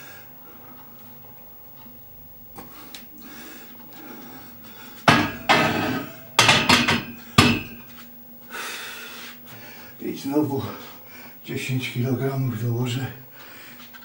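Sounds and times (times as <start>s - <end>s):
barbell clanking onto rack: 5.1s - 7.8s.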